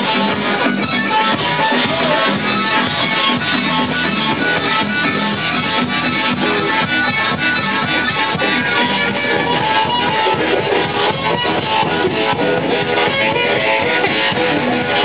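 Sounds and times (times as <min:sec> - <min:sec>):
harmonica: 0:00.0 - 0:15.0
live band playing: 0:00.0 - 0:15.0.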